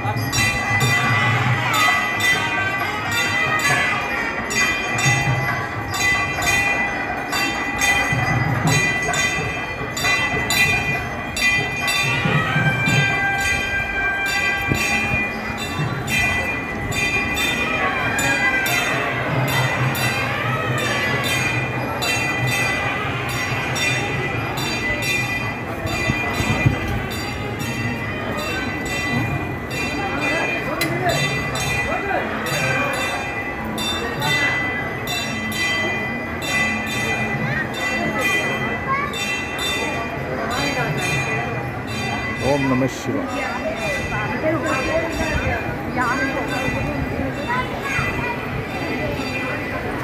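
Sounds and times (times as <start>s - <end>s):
murmur of crowd: 0.0s - 50.0s
temple bells clanging: 0.0s - 50.0s.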